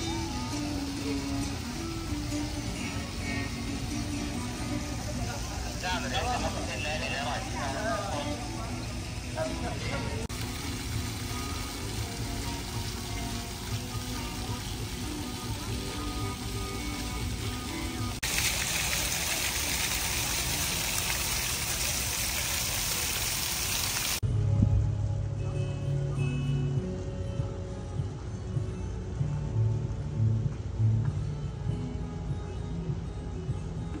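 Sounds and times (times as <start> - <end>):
faint background music: 0.0 - 22.4, 24.2 - 34.0
fountain jets spraying water: 0.0 - 24.2.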